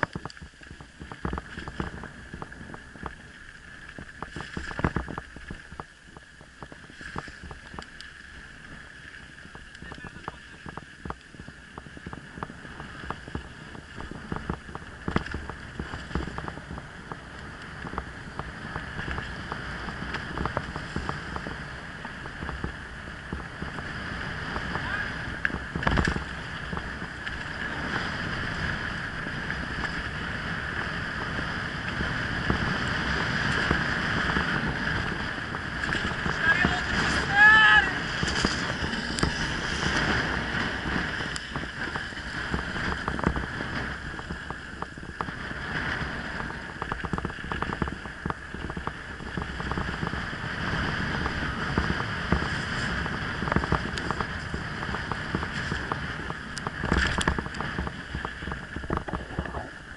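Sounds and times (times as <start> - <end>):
bike rattling on dirt road: 0.0 - 59.9
wind buffeting microphone: 0.0 - 59.9.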